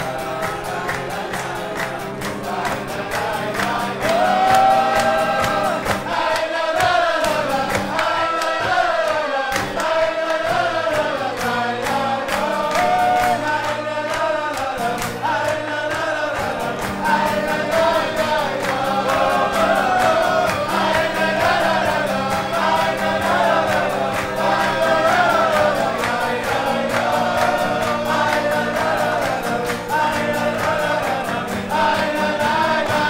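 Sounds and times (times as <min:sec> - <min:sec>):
acoustic guitar strumming: 0:00.0 - 0:33.0
hand-clapping: 0:00.0 - 0:33.0
men singing together: 0:00.0 - 0:33.0.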